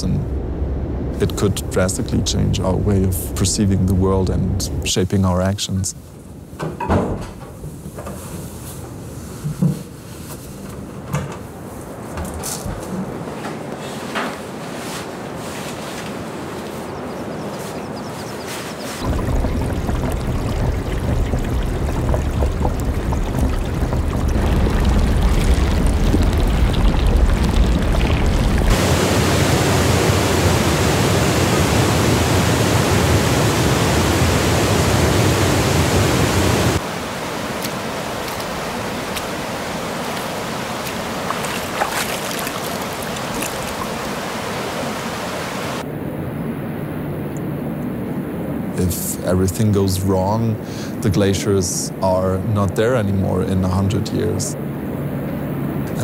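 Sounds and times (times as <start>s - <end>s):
meltwater rushing: 19.0s - 45.9s.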